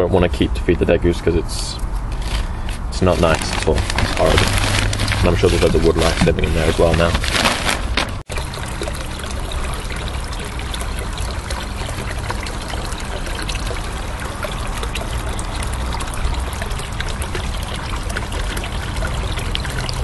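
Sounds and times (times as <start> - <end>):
running water trickling: 2.2 - 20.0.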